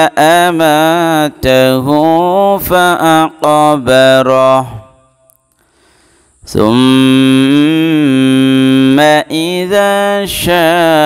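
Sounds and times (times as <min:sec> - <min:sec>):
man reciting with long held vowel: 0:00.0 - 0:05.5, 0:06.3 - 0:11.0.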